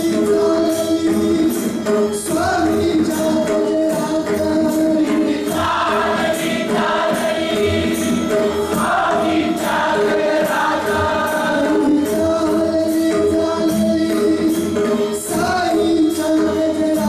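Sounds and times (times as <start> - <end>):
regular percussive beat: 0.0 - 17.0
congregation singing a hymn: 5.1 - 12.2
steady held tones: 5.4 - 12.2.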